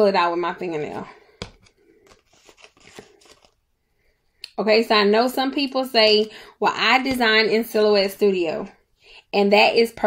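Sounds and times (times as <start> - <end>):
vinyl sticker being peeled: 1.5 - 3.6.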